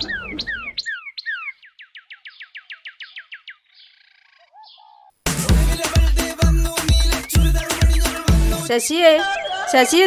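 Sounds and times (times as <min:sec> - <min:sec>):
bird whistling: 0:00.0 - 0:05.1, 0:09.2 - 0:10.0.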